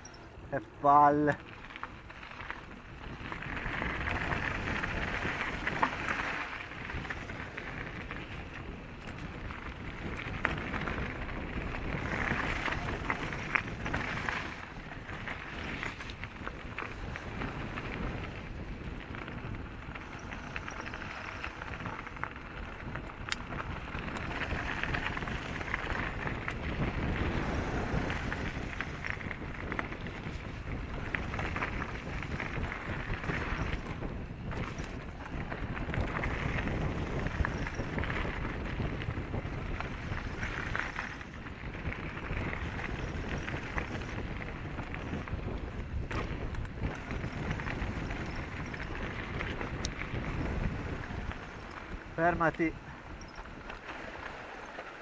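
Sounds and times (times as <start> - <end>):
bike rattling and knocking: 0.0 - 55.0
tyre and wind noise: 0.0 - 55.0.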